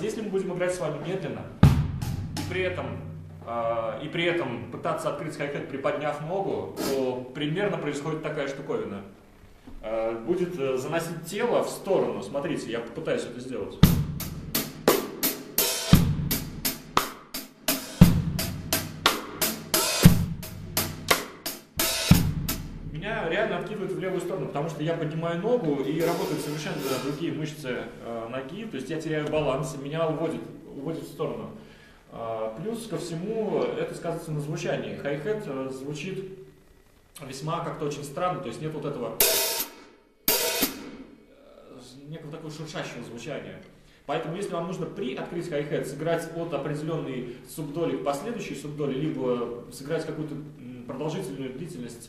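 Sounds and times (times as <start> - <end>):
person talking: 0.0 - 1.6, 2.5 - 9.1, 22.9 - 31.6, 32.2 - 36.4
bass drum hits: 1.6 - 3.5, 20.0 - 23.4
drumstick hitting open hi-hat: 1.6 - 3.5, 6.7 - 7.2, 13.8 - 23.4, 25.6 - 27.4, 39.2 - 41.3
hi-hat strokes: 25.8 - 27.3.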